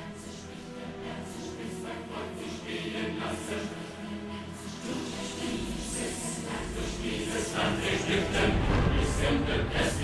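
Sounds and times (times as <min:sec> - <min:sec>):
choir singing: 0:00.0 - 0:10.0
sustained music: 0:00.0 - 0:10.0.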